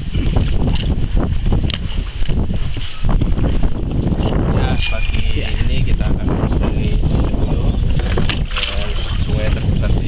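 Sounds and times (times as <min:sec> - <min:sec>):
water against boat hull: 0:00.0 - 0:10.0
wind rumbling on microphone: 0:00.0 - 0:10.0.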